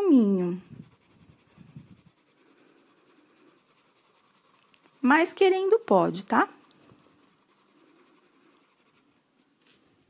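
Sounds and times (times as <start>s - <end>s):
drawing tool rubbing on paper: 0.1s - 9.4s.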